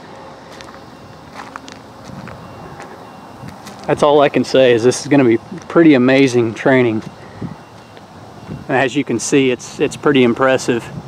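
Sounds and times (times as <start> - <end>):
low outdoor background: 0.0 - 11.0
footsteps crunching on gravel: 0.5 - 7.2.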